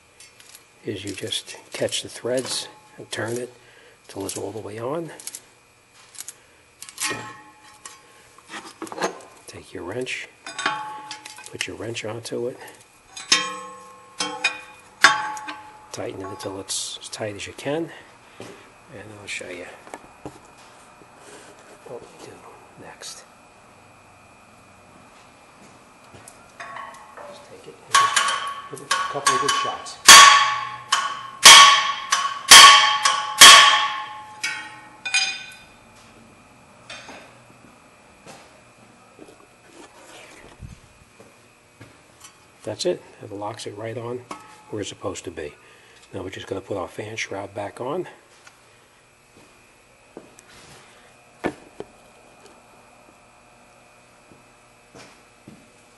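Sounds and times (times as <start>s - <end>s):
hammer striking metal wrench: 10.5s - 11.5s, 13.1s - 16.5s, 27.9s - 35.7s.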